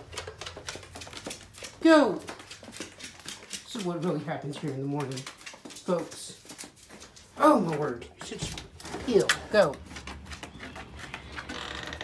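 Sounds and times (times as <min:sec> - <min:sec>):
dog claws clicking on hard floor: 0:00.0 - 0:12.0.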